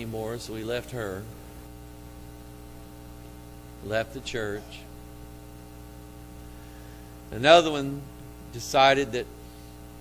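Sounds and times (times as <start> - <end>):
electrical mains hum: 0.0 - 10.0
person speaking: 3.8 - 5.0, 7.3 - 9.4.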